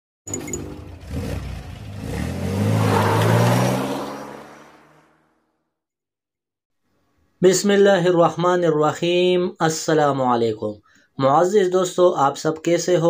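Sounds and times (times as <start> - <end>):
car engine revving: 0.7 - 5.4.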